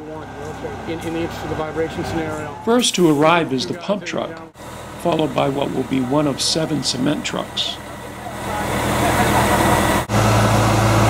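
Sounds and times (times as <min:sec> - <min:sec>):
faint voices talking: 0:00.0 - 0:10.1
diesel engine running: 0:00.0 - 0:11.0.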